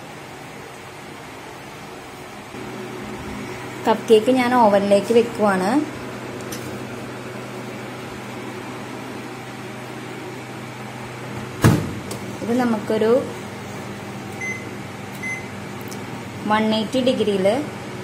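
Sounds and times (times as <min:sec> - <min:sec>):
microwave oven humming: 0:00.0 - 0:18.0
microwave door shutting: 0:11.6 - 0:12.3.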